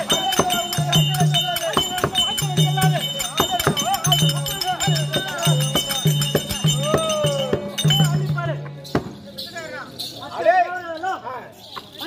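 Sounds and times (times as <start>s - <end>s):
drum strokes: 0.0s - 9.6s.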